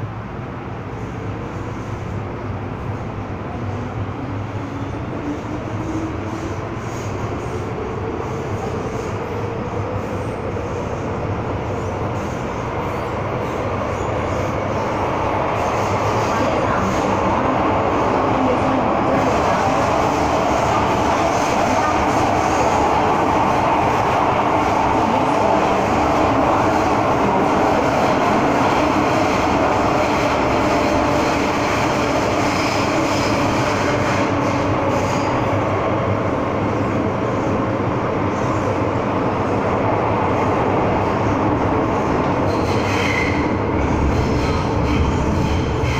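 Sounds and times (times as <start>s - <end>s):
train wheels rumbling on track: 0.0s - 45.9s.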